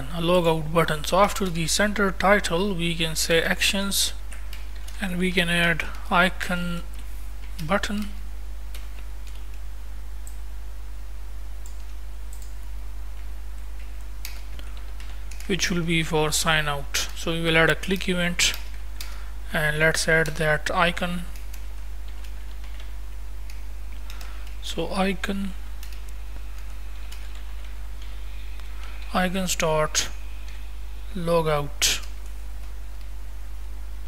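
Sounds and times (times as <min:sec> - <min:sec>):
steady low hum: 0:00.0 - 0:34.0
computer keyboard clicks: 0:04.3 - 0:05.0, 0:08.7 - 0:09.6, 0:11.6 - 0:12.7, 0:13.8 - 0:15.5, 0:21.3 - 0:22.9, 0:23.5 - 0:24.6, 0:25.8 - 0:28.2.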